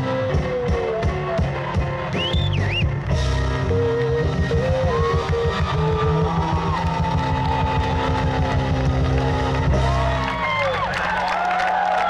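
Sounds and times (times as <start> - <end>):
live band playing: 0.0 - 11.4.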